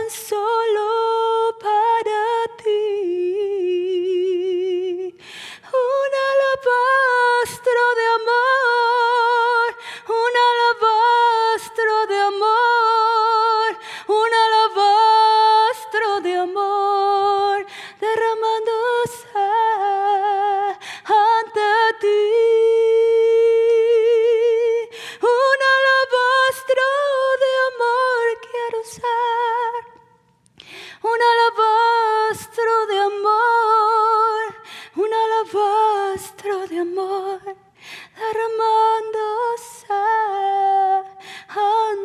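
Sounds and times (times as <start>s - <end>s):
woman singing with vibrato: 0.0s - 30.2s, 31.0s - 42.0s
quick breath: 5.2s - 5.6s, 30.6s - 31.0s, 41.2s - 41.5s.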